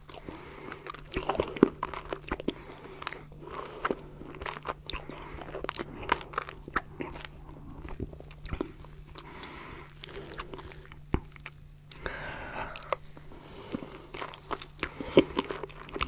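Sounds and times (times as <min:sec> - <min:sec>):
faint low hum: 0:00.0 - 0:16.0
mouth chewing wet smacks: 0:00.1 - 0:09.3, 0:13.7 - 0:16.0.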